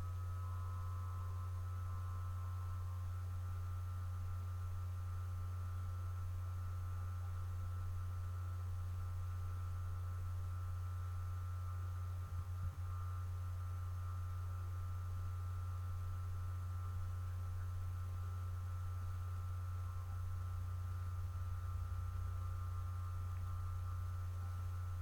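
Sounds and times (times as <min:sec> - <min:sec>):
low electrical hum: 0:00.0 - 0:25.0.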